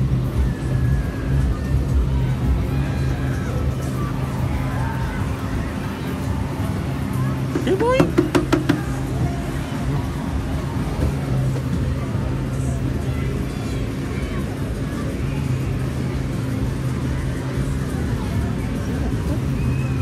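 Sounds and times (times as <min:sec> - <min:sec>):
funfair music: 0:00.0 - 0:20.0
machinery drone: 0:00.0 - 0:20.0
voices: 0:00.0 - 0:20.0.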